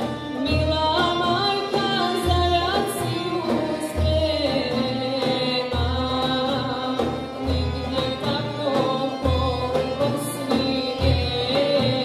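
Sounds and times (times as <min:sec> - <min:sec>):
accordion accompaniment: 0:00.0 - 0:12.0
violin melody: 0:00.0 - 0:12.0.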